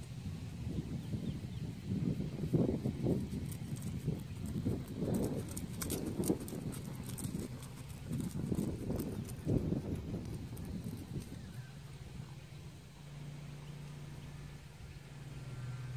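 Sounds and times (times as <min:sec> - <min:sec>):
horse hoofbeats on grass: 0:01.9 - 0:12.2.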